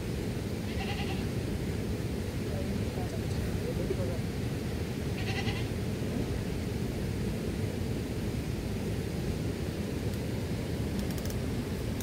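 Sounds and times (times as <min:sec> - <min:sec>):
low rushing noise: 0:00.0 - 0:12.0.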